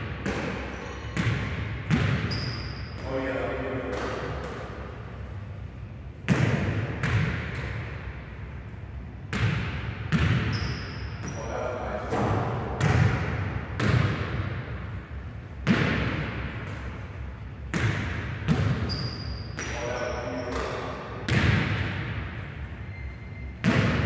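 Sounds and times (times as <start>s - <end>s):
sneaker squeaks: 0.2s - 4.6s, 10.1s - 12.4s, 18.5s - 21.0s, 22.6s - 24.0s
basketball bouncing on wooden floor: 9.3s - 10.7s, 12.8s - 14.3s, 17.7s - 19.1s.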